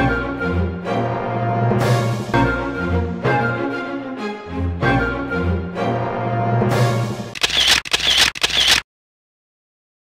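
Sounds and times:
camera shutter clicks: 7.4 - 8.8.

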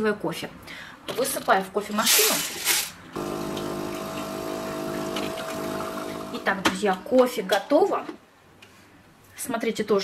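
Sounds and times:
coffee machine pump humming: 3.2 - 6.6.

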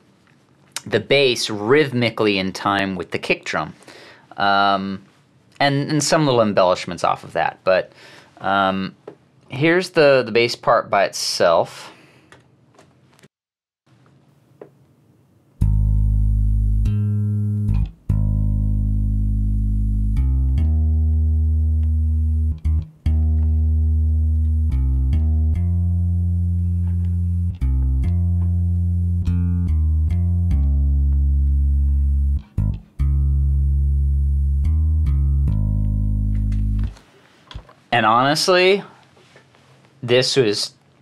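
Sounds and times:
electric bass blues line: 15.6 - 37.7.

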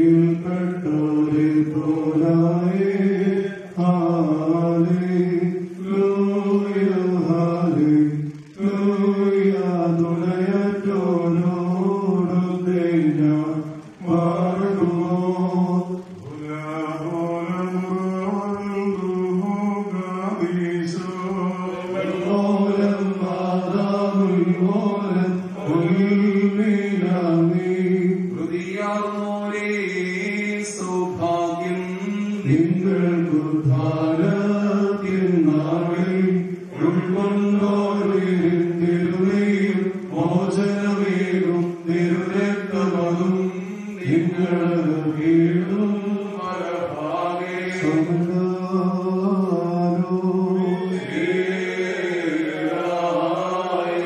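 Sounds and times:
men chanting into a microphone: 0.0 - 54.0.

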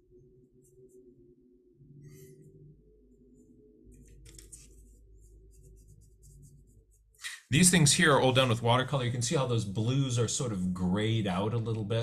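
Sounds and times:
paintbrush brushing on paper: 3.4 - 8.5.

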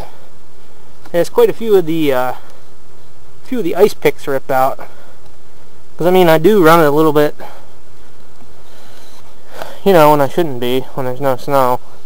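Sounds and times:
thin steady hum: 0.0 - 12.0
man talking: 1.1 - 2.5, 3.4 - 5.0, 6.0 - 7.6, 9.6 - 11.9
man breathing: 4.8 - 5.9, 7.4 - 9.9.

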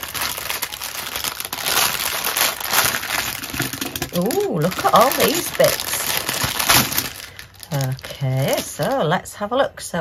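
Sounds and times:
plastic bag crinkling: 0.0 - 9.3.

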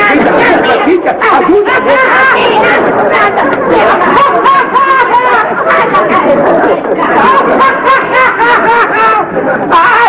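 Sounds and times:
people laughing loudly: 0.0 - 10.0.

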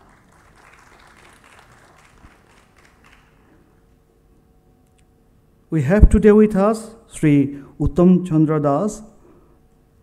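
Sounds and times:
audience applause: 0.0 - 3.5.

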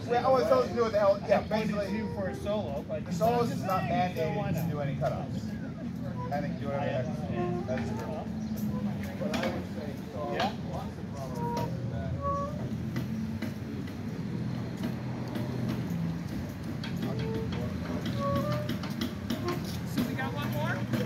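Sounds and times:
people talking: 0.0 - 12.6, 17.0 - 18.7, 19.4 - 21.0
held horn notes: 6.0 - 9.6, 10.3 - 13.5, 14.5 - 21.0.

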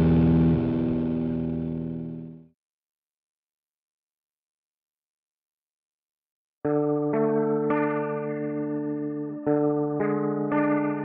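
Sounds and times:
rock song held chord ringing: 0.0 - 2.3.

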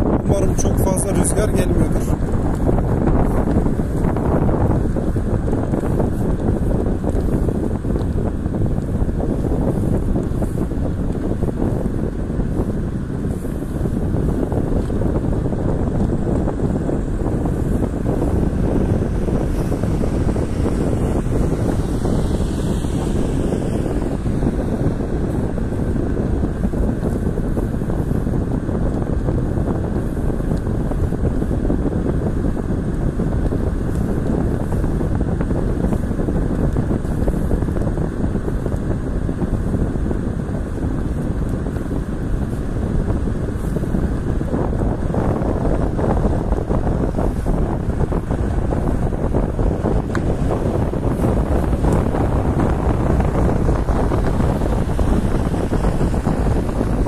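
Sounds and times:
road and wind noise inside car: 0.0 - 57.0.

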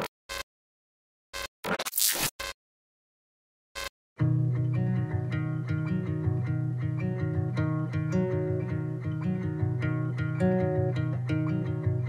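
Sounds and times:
scratchy sound effect bursts: 1.4 - 2.5.

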